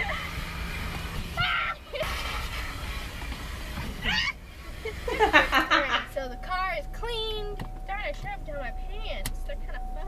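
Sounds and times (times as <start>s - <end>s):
low steady hum: 0.0s - 10.0s
woman laughing loudly: 4.8s - 6.1s.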